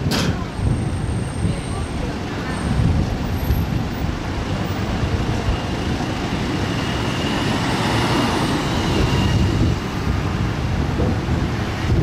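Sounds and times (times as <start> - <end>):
bus passing: 0.0 - 12.0
road traffic rumble: 0.0 - 12.0.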